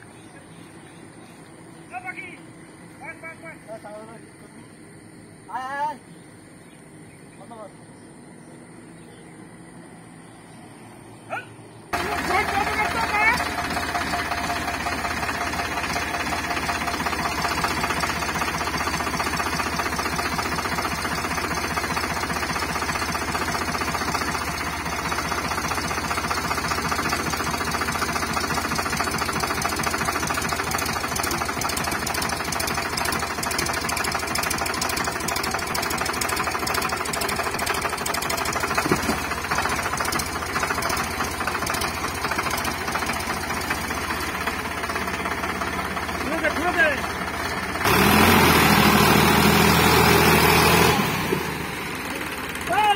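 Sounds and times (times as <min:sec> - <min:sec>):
tractor diesel engine clattering: 0:11.9 - 0:52.9.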